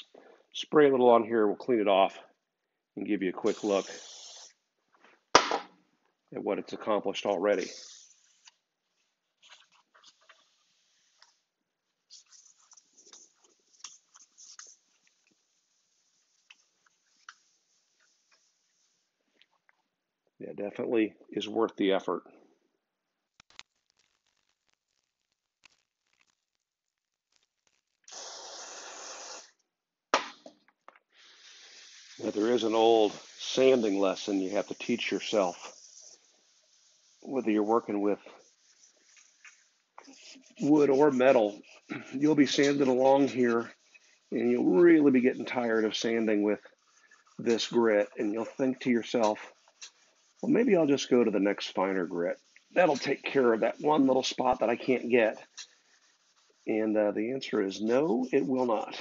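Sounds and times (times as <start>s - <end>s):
aerosol can spraying: 3.4s - 4.6s, 7.5s - 8.5s, 12.1s - 19.1s, 28.0s - 29.6s, 31.1s - 56.7s
sharp knock: 5.4s - 5.7s
scouring pad scrubbing metal: 32.2s - 55.8s.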